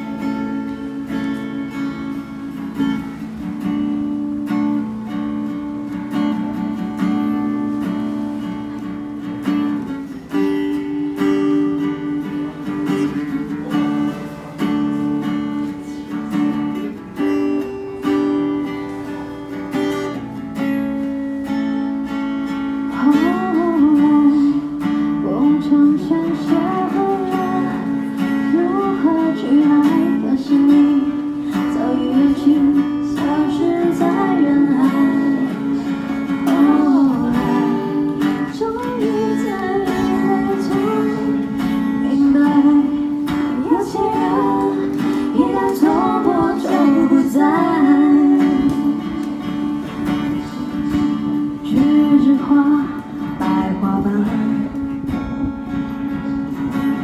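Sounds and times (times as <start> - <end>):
acoustic guitar strumming: 0.0 - 57.0
woman singing: 22.9 - 55.2.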